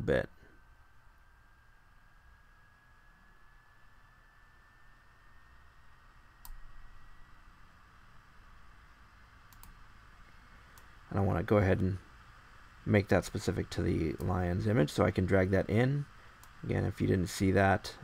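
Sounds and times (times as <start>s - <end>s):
faint thin steady whine: 0.0s - 18.0s
computer mouse clicks: 6.4s - 6.6s, 9.5s - 9.8s.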